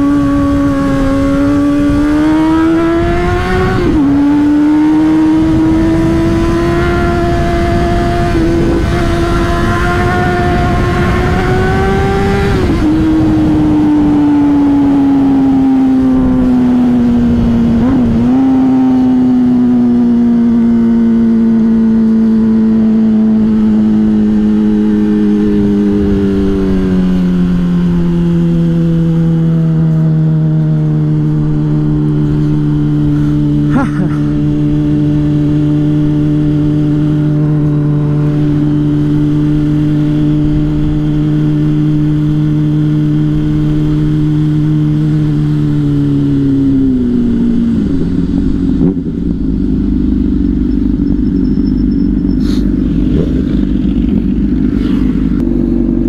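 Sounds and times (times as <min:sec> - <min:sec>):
rushing wind noise: 0:00.0 - 0:29.9
motorcycle engine at high revs: 0:00.0 - 0:56.0.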